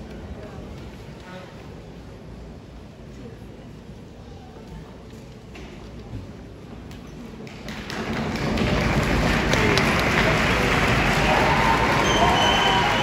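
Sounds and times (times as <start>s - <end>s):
crowd cheering and applauding: 7.7s - 13.0s.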